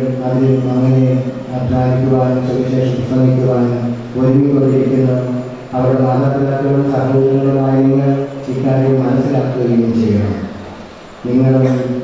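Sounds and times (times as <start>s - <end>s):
man chanting: 0.0s - 10.6s.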